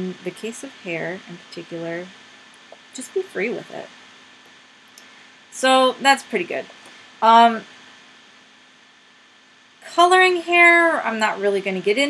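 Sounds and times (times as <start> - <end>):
woman speaking: 0.0 - 2.1, 2.8 - 3.9, 5.6 - 7.6, 9.8 - 12.0
faint steady hiss: 0.0 - 12.0.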